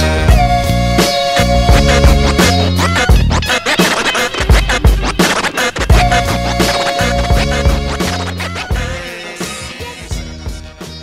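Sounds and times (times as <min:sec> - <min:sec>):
hip-hop beat: 0:00.0 - 0:11.0
turntable scratching: 0:00.0 - 0:11.0.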